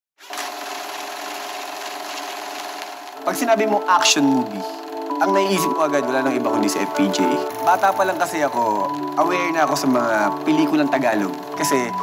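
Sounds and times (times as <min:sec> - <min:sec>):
film projector whirring and rattling: 0:00.2 - 0:12.0.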